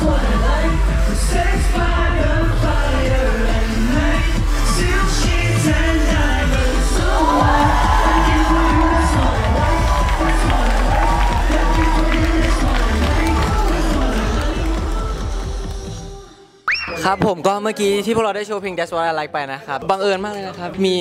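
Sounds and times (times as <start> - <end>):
live pop music with bass beat: 0.0 - 17.2
crowd cheering: 7.0 - 15.5.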